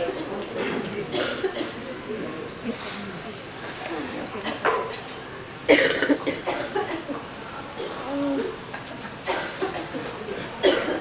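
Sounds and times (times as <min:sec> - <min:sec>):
faint indistinct voices: 0:00.0 - 0:11.0
loud cough: 0:00.6 - 0:01.8, 0:05.7 - 0:07.0, 0:09.3 - 0:11.0.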